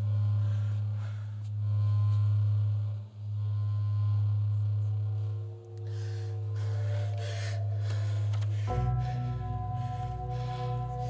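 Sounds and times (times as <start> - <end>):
deep low drone: 0.0 - 11.0.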